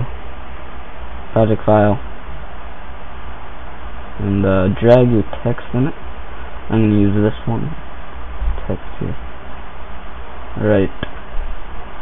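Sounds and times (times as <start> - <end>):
low hum: 0.0 - 12.0
steady hiss: 0.0 - 12.0.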